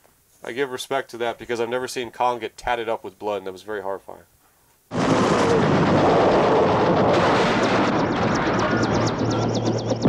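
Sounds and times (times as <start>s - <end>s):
barrage of gunfire: 4.9s - 10.0s.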